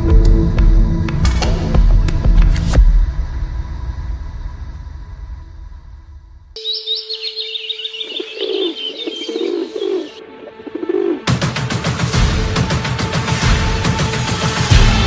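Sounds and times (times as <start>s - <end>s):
trailer music: 0.0s - 15.0s
birds chirping: 6.6s - 11.2s
bird cooing: 6.6s - 11.3s.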